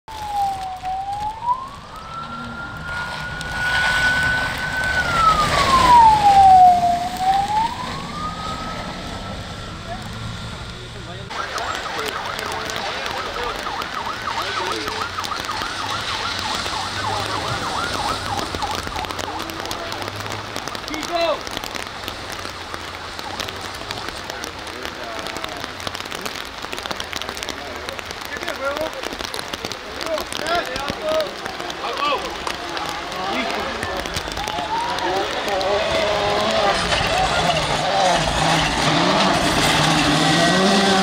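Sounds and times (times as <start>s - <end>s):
fast warbling siren: 0.1s - 10.6s, 11.3s - 20.1s
siren wailing up and down: 0.1s - 21.1s.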